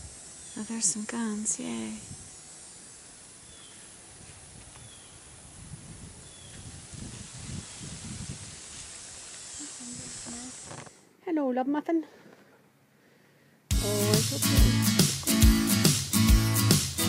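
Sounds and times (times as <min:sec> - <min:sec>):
steady hiss: 0:00.0 - 0:11.2, 0:13.6 - 0:17.0.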